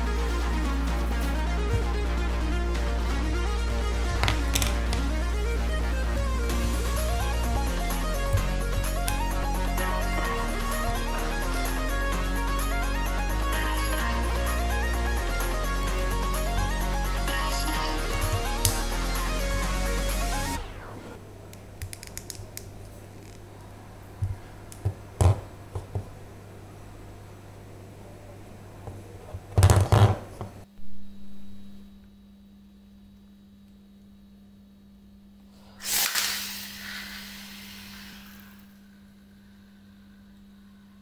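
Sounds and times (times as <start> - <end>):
spinning top launcher rip: 35.8 - 38.7
top spinning whirr on tiles: 35.8 - 38.8.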